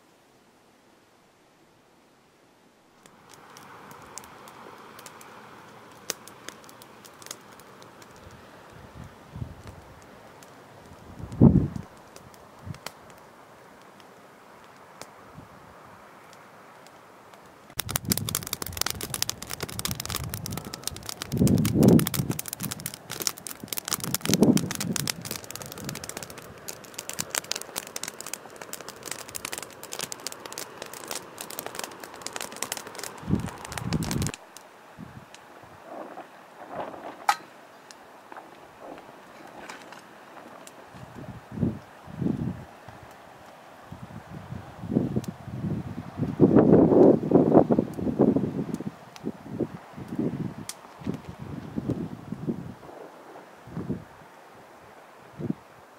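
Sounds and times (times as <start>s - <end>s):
campfire crackling and popping: 2.9s - 15.6s, 16.2s - 54.1s.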